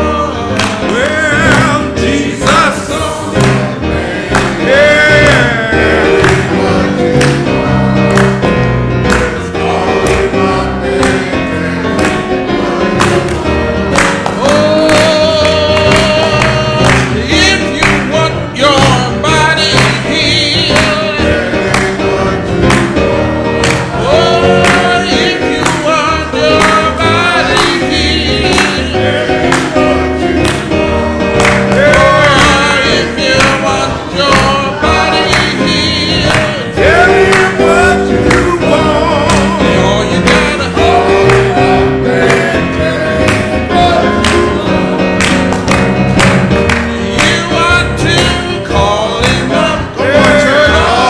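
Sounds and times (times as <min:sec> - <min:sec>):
piano chords: 0:00.0 - 0:51.0
voices singing along: 0:00.0 - 0:51.0
handclaps: 0:00.6 - 0:01.8, 0:03.4 - 0:05.6, 0:06.2 - 0:06.5, 0:07.2 - 0:07.5, 0:08.1 - 0:09.4, 0:13.0 - 0:21.1, 0:21.7 - 0:22.0, 0:22.6 - 0:24.0, 0:24.6 - 0:28.9, 0:29.5 - 0:29.8, 0:30.4 - 0:36.6, 0:41.3 - 0:41.6, 0:43.3 - 0:43.6, 0:44.2 - 0:44.6, 0:45.2 - 0:48.5, 0:49.2 - 0:50.5.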